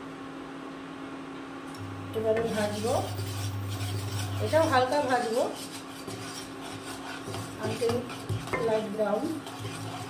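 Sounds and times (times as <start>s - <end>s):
induction cooktop hum: 0.0s - 10.0s
wooden spatula scraping a pan: 2.2s - 10.0s
spatula squeaking on pan: 2.4s - 10.0s.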